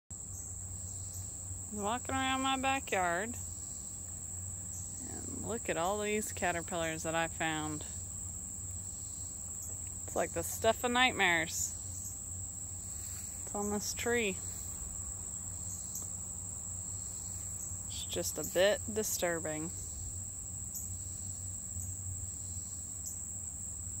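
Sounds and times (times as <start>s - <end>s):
insects trilling: 0.2s - 24.0s
faint low hum: 0.3s - 24.0s.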